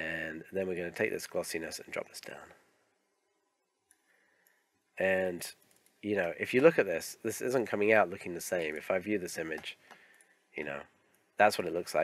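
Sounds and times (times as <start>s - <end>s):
computer mouse clicks: 3.8s - 4.6s, 5.5s - 6.0s, 9.5s - 10.3s.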